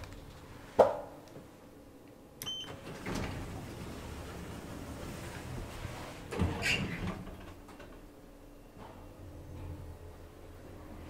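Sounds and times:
elevator mechanical rumble and whir: 0.0 - 11.0
elevator doors sliding shut: 2.4 - 8.2.

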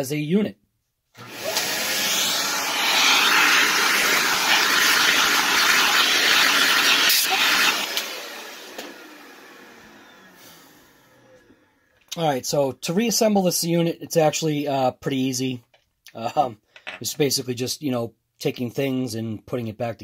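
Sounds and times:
vacuum cleaner running: 1.2 - 11.9.

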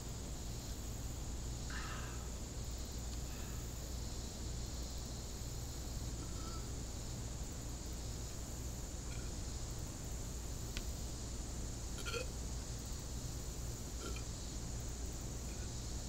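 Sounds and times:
insect chorus: 0.0 - 16.0
low steady hum: 0.0 - 16.0.

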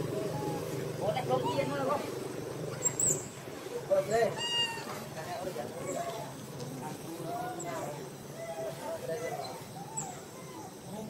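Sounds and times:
young monkey crying: 0.1 - 1.9, 2.7 - 3.3, 4.3 - 5.0, 8.3 - 10.9.

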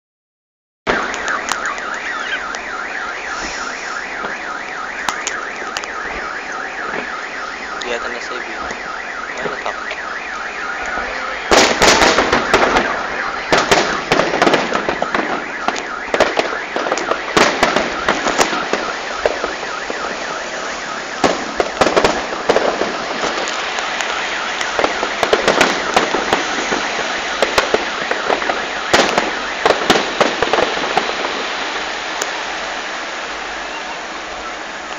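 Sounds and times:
fireworks bangs and crackles: 0.9 - 34.9.

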